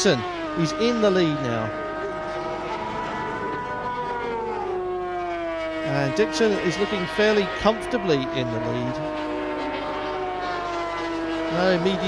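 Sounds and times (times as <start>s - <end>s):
two-stroke engine at high revs: 0.0s - 12.0s.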